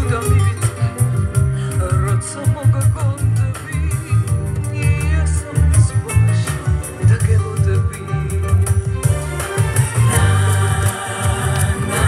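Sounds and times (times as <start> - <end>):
backing track with pulsing bass beat: 0.0 - 12.0.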